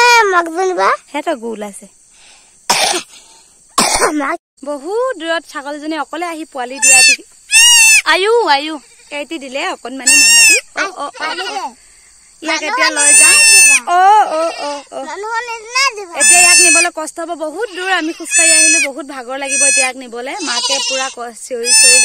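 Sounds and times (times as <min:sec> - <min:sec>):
goat kid bleating: 0:06.8 - 0:08.1, 0:08.7 - 0:09.2, 0:10.0 - 0:11.8, 0:12.6 - 0:14.9, 0:15.6 - 0:16.9, 0:17.7 - 0:22.0.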